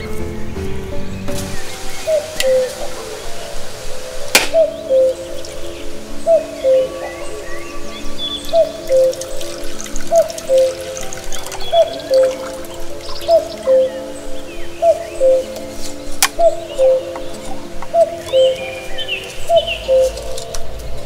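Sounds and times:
background music melody: 0.0s - 21.0s
coconut water trickling: 1.4s - 21.0s
knife cracking coconut: 4.4s - 4.6s.

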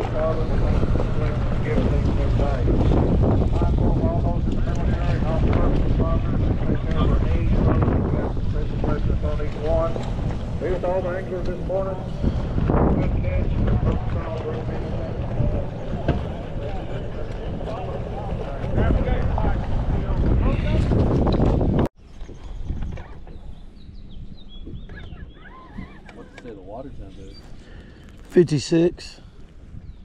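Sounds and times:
outboard motors idling: 0.0s - 20.9s, 23.1s - 29.6s
voices: 0.0s - 20.9s, 24.9s - 29.2s
water sounds: 0.0s - 23.8s, 24.6s - 29.6s
wind buffeting microphone: 0.0s - 30.0s.

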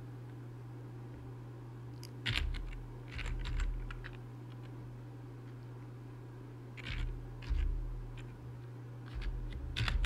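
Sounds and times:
steady low hum: 0.0s - 10.0s
keyboard typing: 2.2s - 4.2s, 6.8s - 8.3s, 9.0s - 10.0s.

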